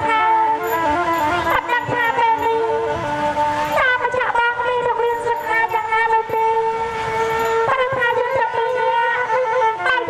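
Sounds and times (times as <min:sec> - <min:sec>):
reedy instrumental accompaniment: 0:00.0 - 0:10.0
woman singing into microphone: 0:01.5 - 0:03.0, 0:03.7 - 0:06.7, 0:07.7 - 0:10.0.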